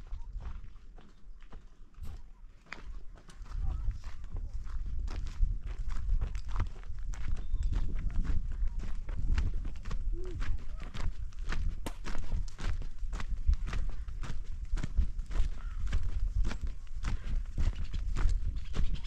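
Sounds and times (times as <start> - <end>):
footsteps on stony dirt path: 0.0 - 19.0.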